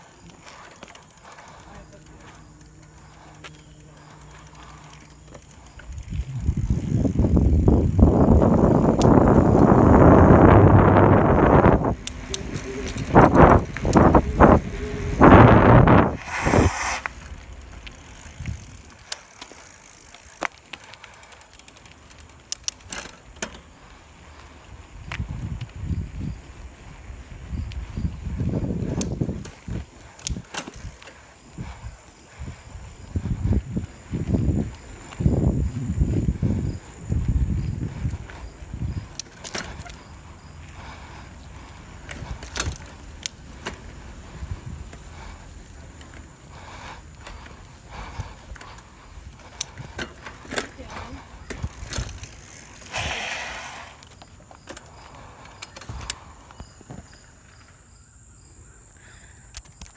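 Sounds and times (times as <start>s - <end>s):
bicycle riding on road: 0.0s - 59.9s
wind buffeting microphone: 4.0s - 19.1s, 23.8s - 54.0s.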